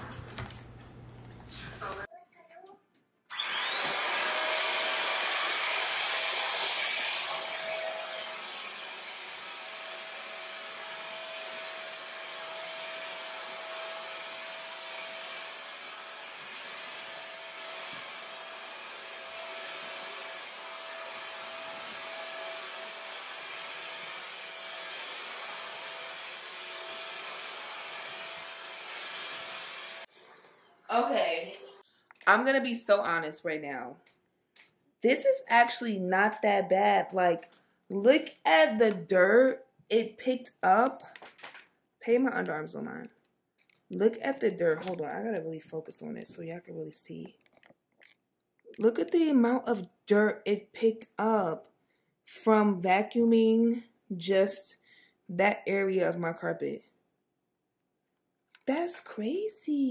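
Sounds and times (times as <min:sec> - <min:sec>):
vacuum cleaner running: 0:03.3 - 0:30.1.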